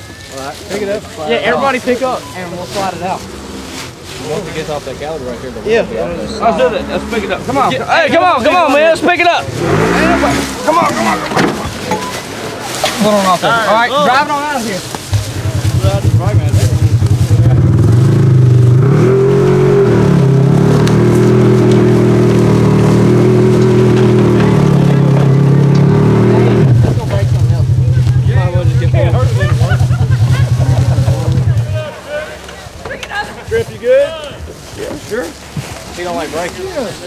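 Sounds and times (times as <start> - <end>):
engine revving under load: 1.6 - 12.7, 15.1 - 31.9.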